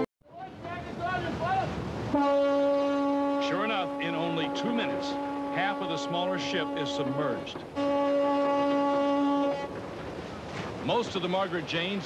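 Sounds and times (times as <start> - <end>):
sea noise: 0.0 - 12.0
ship's horn blast: 2.0 - 10.0.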